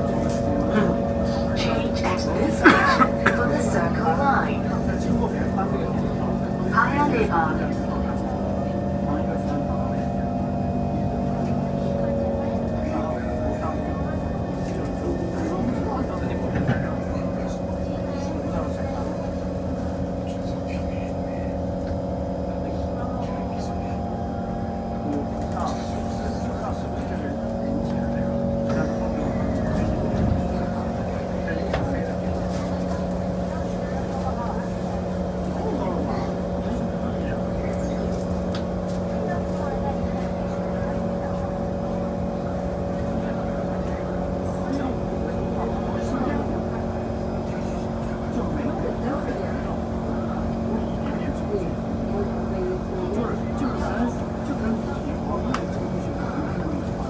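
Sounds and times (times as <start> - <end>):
passengers talking: 0.0 - 57.0
train car hum: 0.0 - 57.0.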